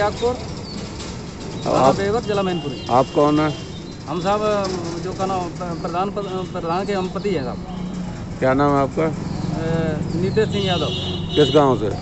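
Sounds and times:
men talking: 0.0s - 0.7s, 1.4s - 12.0s.

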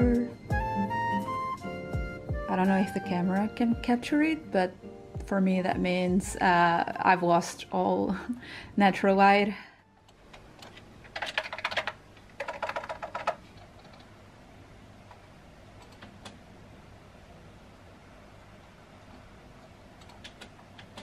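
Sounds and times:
faint steady background noise: 0.0s - 21.0s
keyboard keystrokes clattering: 10.2s - 14.1s, 20.0s - 21.0s.

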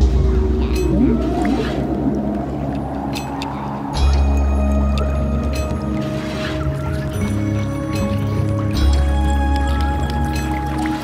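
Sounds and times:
moaning gliding tones: 0.0s - 6.1s
deep rumbling drone: 0.0s - 11.0s.

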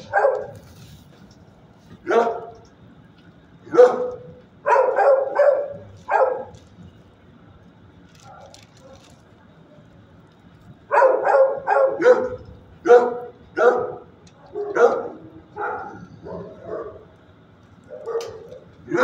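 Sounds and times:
dog barking: 0.0s - 0.6s, 2.0s - 2.6s, 3.7s - 6.6s, 10.9s - 17.1s, 17.9s - 19.0s.

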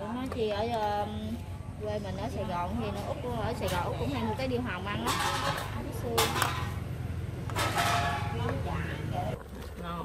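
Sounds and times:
low mechanical hum: 0.0s - 10.0s
metal ladle clinking on pot: 7.5s - 8.6s.

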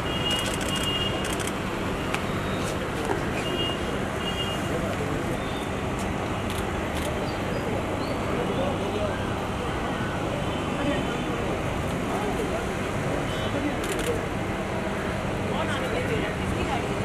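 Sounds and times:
rapid camera shutter clicks: 0.3s - 1.6s.

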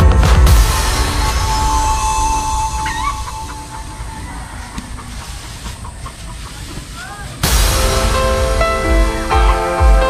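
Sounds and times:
low wind-like rumble: 0.4s - 9.6s
rustling of straw: 0.7s - 9.8s
chicken clucking: 2.0s - 7.5s.

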